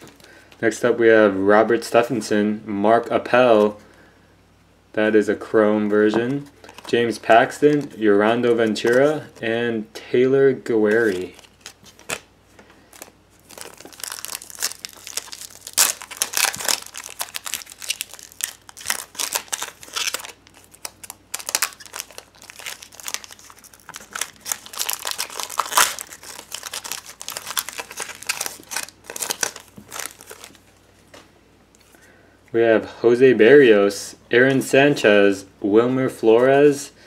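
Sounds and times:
foil wrapper tearing and crinkling: 0:12.9 - 0:30.6.

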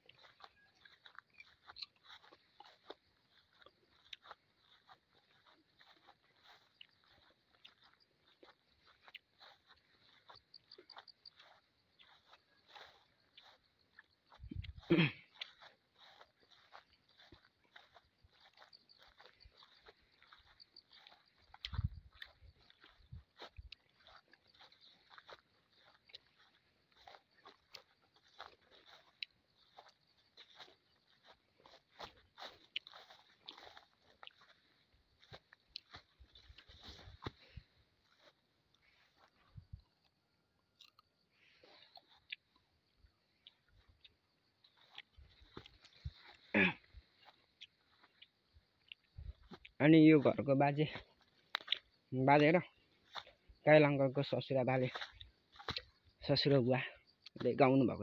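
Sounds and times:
footsteps brushing through dry grass: 0:00.0 - 0:39.9, 0:43.7 - 0:56.2
faint scattered crackles: 0:00.0 - 0:50.2, 0:50.8 - 0:53.6.

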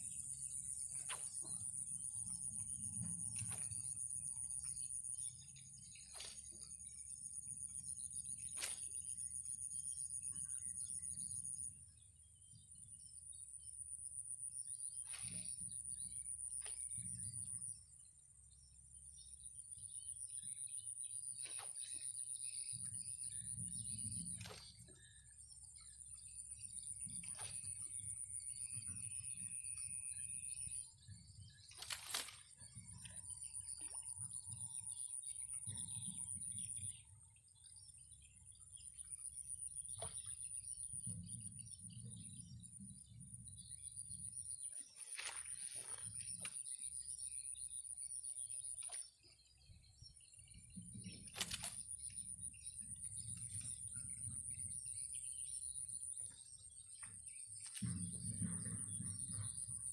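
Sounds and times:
bird chirps: 0:00.0 - 0:59.9
wind rumble on microphone: 0:56.7 - 0:59.9.

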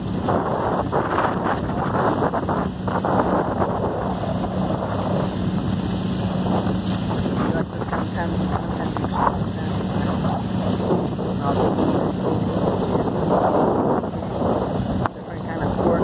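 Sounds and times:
motorboat engine humming: 0:00.0 - 0:16.0
water rushing along hull: 0:00.0 - 0:16.0
wind buffeting microphone: 0:00.0 - 0:16.0.

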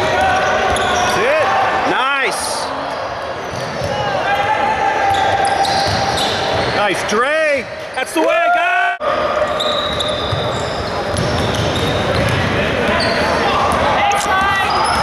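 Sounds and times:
sneakers squeaking on hardwood floor: 0:00.0 - 0:01.3, 0:03.0 - 0:04.1, 0:05.0 - 0:06.8, 0:09.4 - 0:15.0
basketball dribbling: 0:10.3 - 0:12.4.

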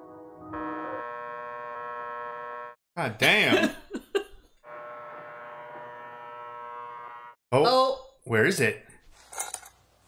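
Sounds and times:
alarm clock buzzing: 0:00.5 - 0:02.8, 0:04.6 - 0:07.4.

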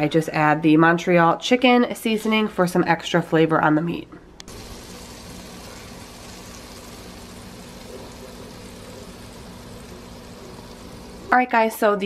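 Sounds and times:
faint hum: 0:04.0 - 0:12.0
juices sizzling in a hot pan: 0:04.5 - 0:12.0.

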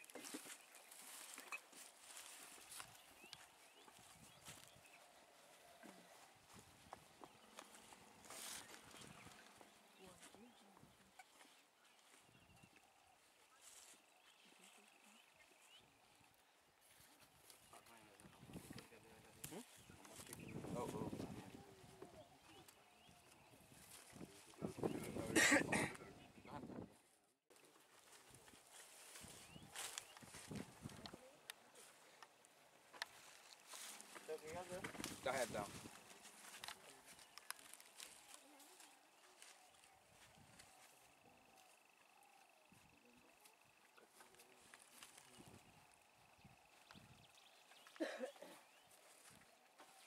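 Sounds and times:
faint outdoor background noise: 0:00.0 - 0:50.0
small clicks and rustles: 0:36.1 - 0:39.3.

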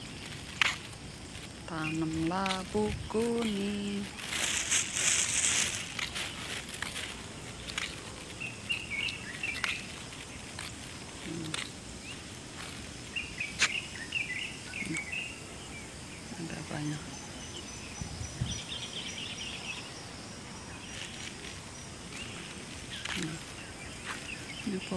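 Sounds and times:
outdoor background noise: 0:00.0 - 0:24.9
small birds chirping: 0:00.0 - 0:24.9.

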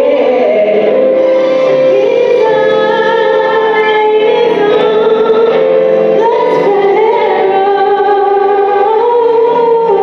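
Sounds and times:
woman singing gospel song: 0:00.0 - 0:01.2, 0:01.9 - 0:10.0.

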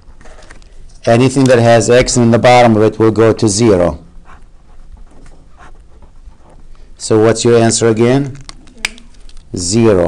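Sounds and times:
marker scratching on paper: 0:04.1 - 0:06.9.

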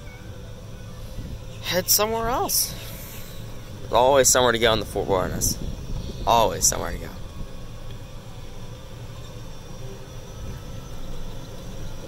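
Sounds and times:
golf cart motor and tyres rumbling: 0:00.0 - 0:12.0.

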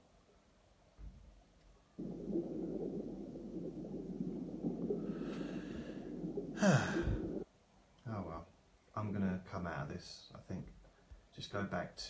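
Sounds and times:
steady low rumble: 0:02.0 - 0:07.4.

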